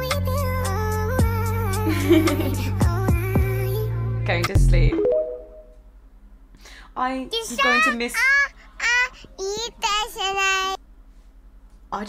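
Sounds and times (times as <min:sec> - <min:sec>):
child's high voice wavering: 0:07.5 - 0:10.8.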